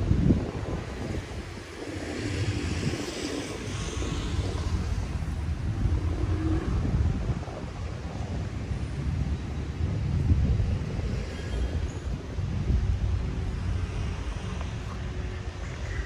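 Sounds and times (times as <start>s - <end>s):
low uneven city rumble: 0.0s - 16.0s.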